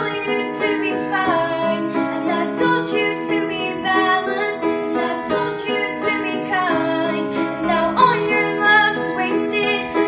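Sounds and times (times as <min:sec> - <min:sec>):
girl singing: 0:00.0 - 0:10.0
piano chords: 0:00.0 - 0:10.0.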